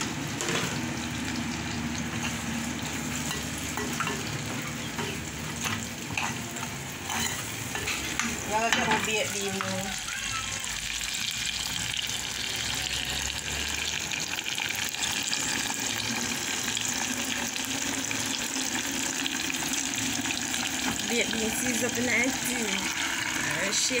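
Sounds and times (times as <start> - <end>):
food sizzling in oil: 0.0 - 24.0
metal spoon stirring pot: 2.1 - 9.8.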